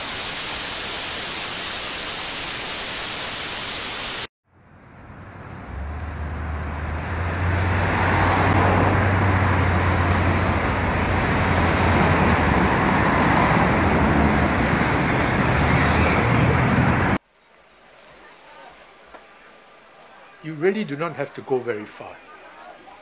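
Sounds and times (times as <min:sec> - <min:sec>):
road traffic: 0:04.5 - 0:17.3.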